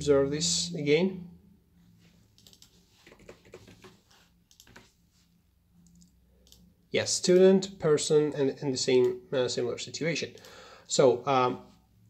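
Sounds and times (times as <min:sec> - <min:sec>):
keyboard typing clicks: 0:02.4 - 0:04.9.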